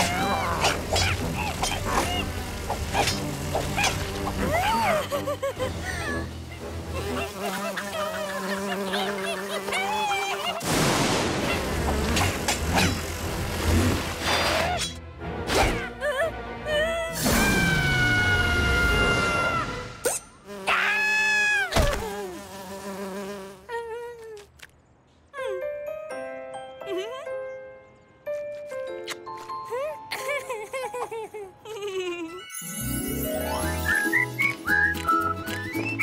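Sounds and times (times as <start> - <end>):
cartoon bee buzzing: 0.0 - 10.8, 11.4 - 14.7, 17.1 - 24.4.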